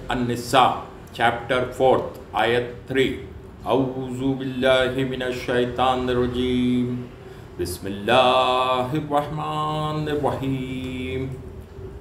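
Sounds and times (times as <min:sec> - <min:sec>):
man chanting recitation: 0:00.0 - 0:11.6.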